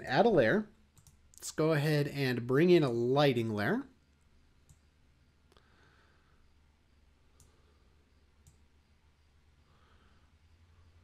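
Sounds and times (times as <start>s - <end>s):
computer mouse clicks: 0.9s - 1.5s, 4.2s - 4.9s, 7.3s - 7.6s, 8.4s - 8.7s.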